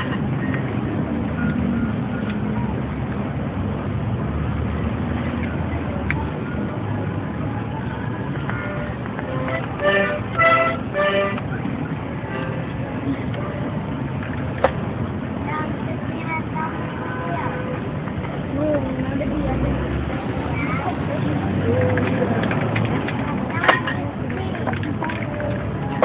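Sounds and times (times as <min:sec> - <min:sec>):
street noise rumble: 0:00.0 - 0:26.0.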